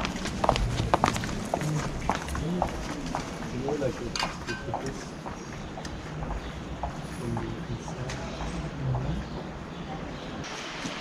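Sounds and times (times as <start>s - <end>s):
faint indistinct voices: 0.0s - 11.0s
street background noise: 0.0s - 11.0s.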